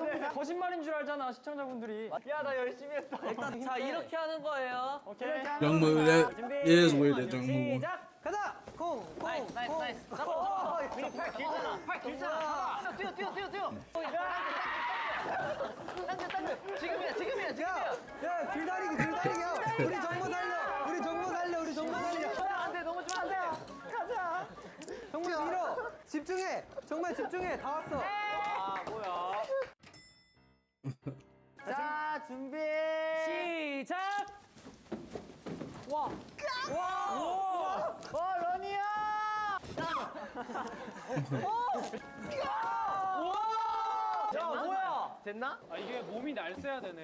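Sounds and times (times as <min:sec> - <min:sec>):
background music: 0:03.2 - 0:34.6, 0:40.0 - 0:45.7
young men shouting: 0:10.2 - 0:15.8, 0:17.5 - 0:22.8.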